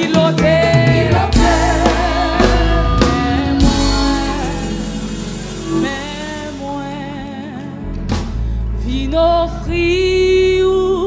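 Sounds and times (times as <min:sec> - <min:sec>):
band with drum kit: 0:00.0 - 0:08.6
drum hit: 0:01.0 - 0:06.9.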